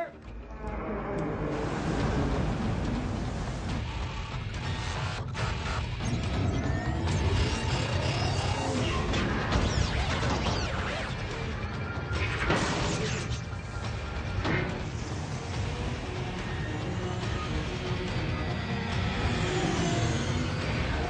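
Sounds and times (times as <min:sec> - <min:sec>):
heavy low rumble: 0:00.2 - 0:04.7.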